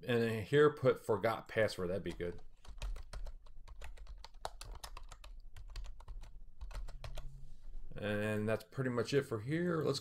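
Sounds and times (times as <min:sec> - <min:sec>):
typing on computer keyboard: 0:02.1 - 0:07.3.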